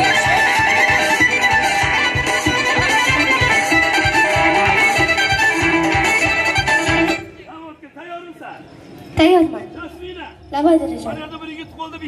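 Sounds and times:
guitar music: 0.0 - 7.2.

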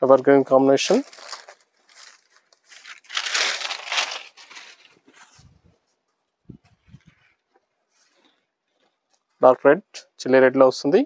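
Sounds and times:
fabric crinkling rustle: 0.0 - 9.4.

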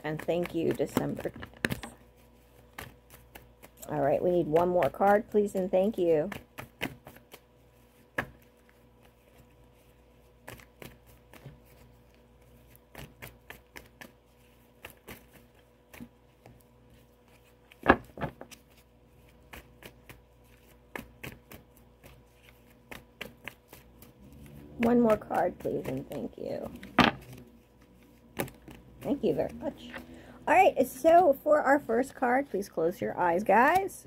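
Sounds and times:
cards being shuffled: 0.0 - 30.1, 33.2 - 34.0.

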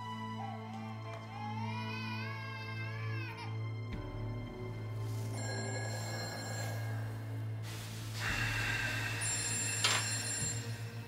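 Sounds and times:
background music drone: 0.0 - 11.0
mobile phone ringtone: 5.3 - 7.0, 9.2 - 11.0.

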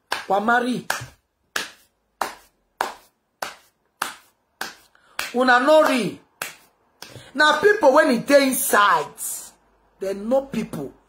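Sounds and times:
hands smacking: 0.0 - 7.3.

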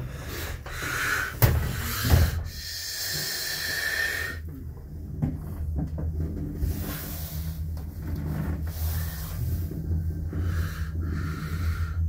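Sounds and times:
lift car rumble and hum: 0.0 - 12.0.

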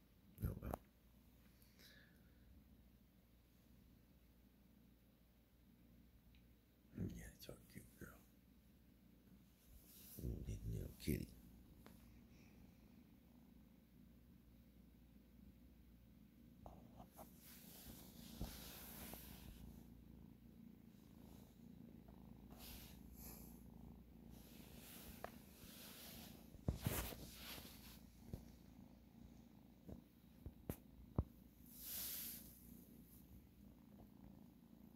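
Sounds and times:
kitten purring: 0.3 - 2.5, 6.9 - 34.9
person whispering: 0.4 - 0.8, 7.0 - 8.3, 10.0 - 11.4.

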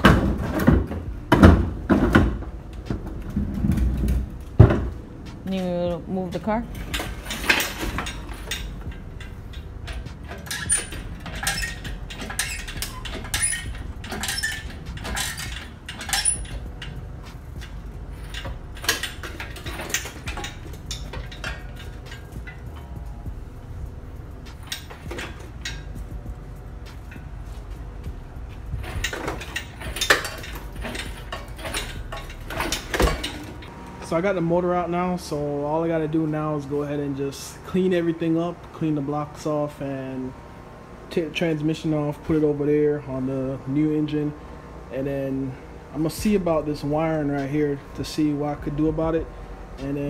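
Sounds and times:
steady low rumble: 0.0 - 50.0
metallic clanks and clinks: 6.5 - 33.7.

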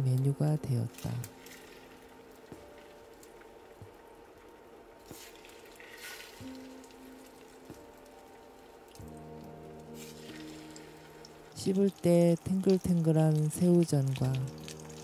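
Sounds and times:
background music with sustained notes: 0.0 - 15.0
battered food sizzling in oil: 0.9 - 3.8, 4.4 - 15.0.

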